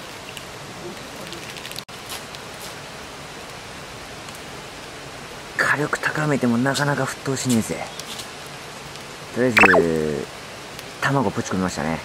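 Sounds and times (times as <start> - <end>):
fire crackles: 1.6 - 5.6, 8.0 - 9.3.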